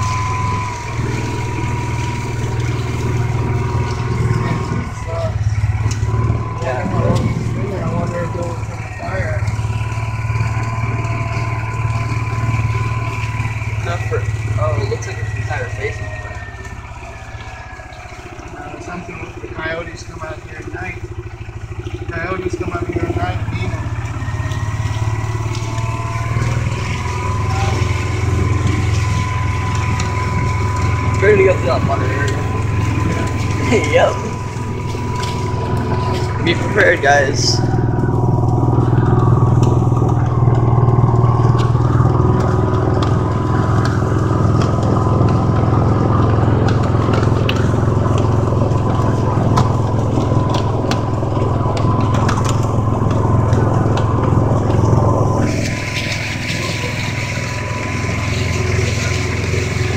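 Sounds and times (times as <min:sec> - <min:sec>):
vehicle engine running: 0:00.0 - 0:59.9.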